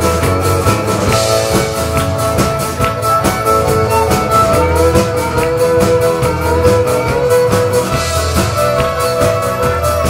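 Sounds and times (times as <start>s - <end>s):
accordion: 0.0s - 10.0s
acoustic guitars: 0.0s - 10.0s
drum kit beat: 0.0s - 10.0s
fiddle playing: 0.0s - 10.0s.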